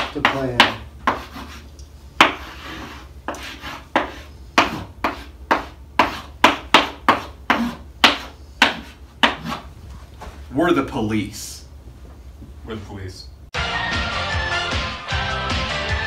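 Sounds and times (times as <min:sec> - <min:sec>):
chalk tapping and scraping: 0:00.0 - 0:09.7.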